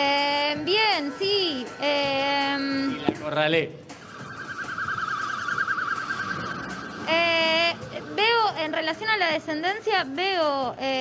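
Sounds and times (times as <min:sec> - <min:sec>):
electronic siren warbling: 0:03.9 - 0:07.9.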